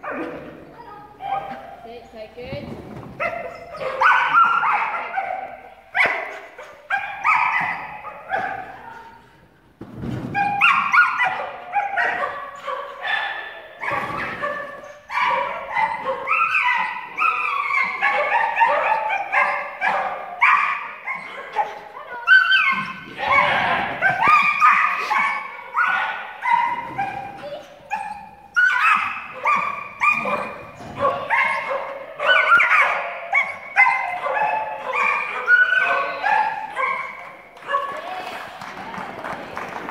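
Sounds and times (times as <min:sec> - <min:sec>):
dog barking and yipping: 0:03.2 - 0:09.0, 0:10.4 - 0:38.0.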